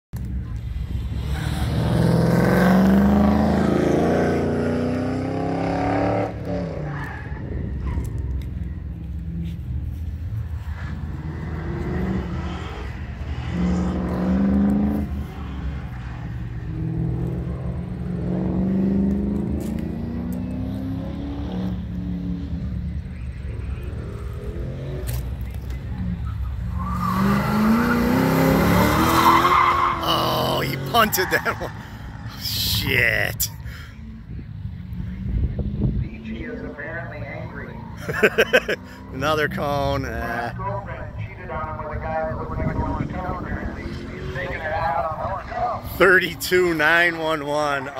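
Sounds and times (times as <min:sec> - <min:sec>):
tires squealing: 0:00.8 - 0:33.8, 0:36.0 - 0:47.9
car engine accelerating hard: 0:01.1 - 0:06.9, 0:10.8 - 0:22.8, 0:26.8 - 0:32.2.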